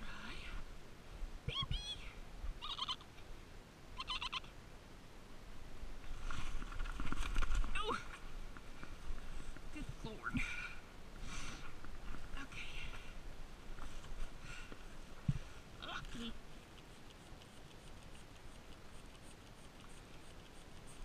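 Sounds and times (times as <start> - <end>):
goat kids bleating: 4.0 - 4.5.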